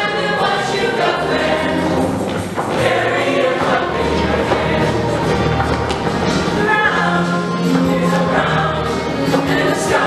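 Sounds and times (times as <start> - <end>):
choir singing with music: 0.0 - 10.0.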